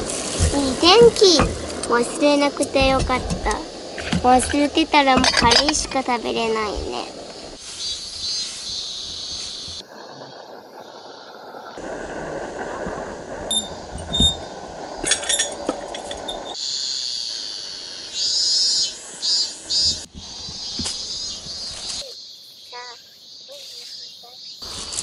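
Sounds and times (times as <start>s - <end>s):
insects buzzing: 0.0s - 25.0s.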